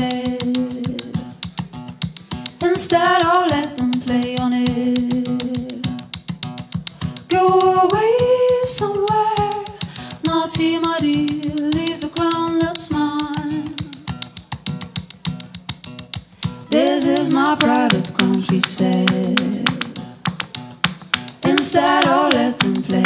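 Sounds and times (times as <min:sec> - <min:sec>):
woman singing: 0:00.0 - 0:01.4, 0:02.5 - 0:06.0, 0:07.3 - 0:14.2, 0:16.7 - 0:20.2, 0:21.4 - 0:23.0
acoustic guitar picking: 0:00.0 - 0:23.0.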